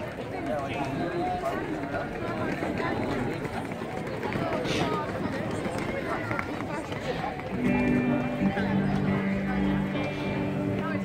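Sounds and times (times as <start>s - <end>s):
people talking walking past: 0.0s - 11.0s
music with long held notes: 7.5s - 11.0s.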